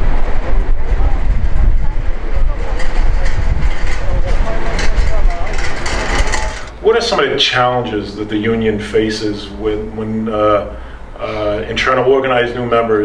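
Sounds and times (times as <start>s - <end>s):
low rumble of traffic: 0.0s - 13.0s
indistinct voices: 0.3s - 13.0s.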